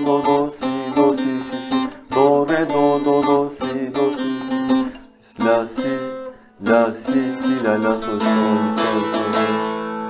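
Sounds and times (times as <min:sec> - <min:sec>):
plucked lute chord strummed: 0:00.0 - 0:10.0.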